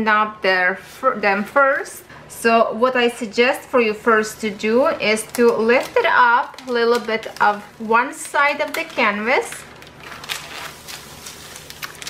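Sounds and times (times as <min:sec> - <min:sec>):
plastic film peeling and crinkling: 0:04.4 - 0:12.0.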